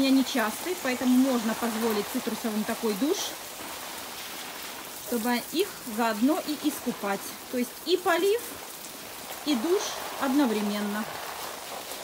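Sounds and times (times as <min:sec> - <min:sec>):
hose water spraying on leaves: 0:00.0 - 0:12.0.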